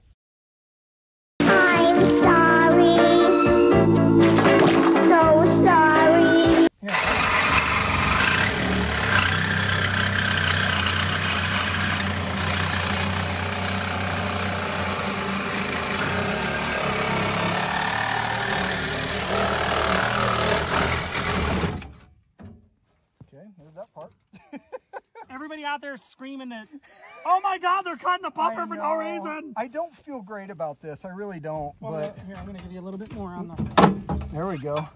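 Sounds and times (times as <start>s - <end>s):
child's voice: 1.4s - 3.4s, 5.0s - 6.7s
commercial jingle music: 1.4s - 6.7s
reciprocating saw cutting metal: 6.8s - 22.1s.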